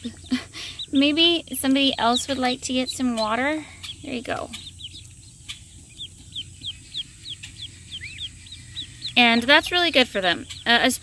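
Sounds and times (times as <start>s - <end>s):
ducklings peeping: 0.0s - 11.0s.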